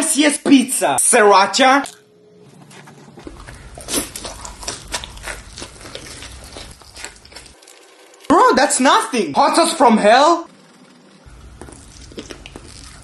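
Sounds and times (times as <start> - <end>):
person chewing pizza: 2.5 - 8.3, 11.3 - 13.0
low steady hum: 9.8 - 13.0.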